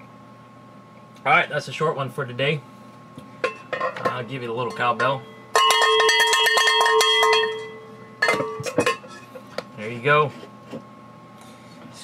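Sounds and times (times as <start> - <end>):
cowbell shaken rapidly: 5.5 - 7.7.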